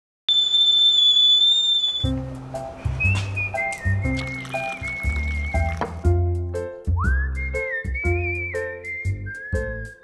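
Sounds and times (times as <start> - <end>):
kettle whistling: 0.3 - 2.2, 3.0 - 6.1.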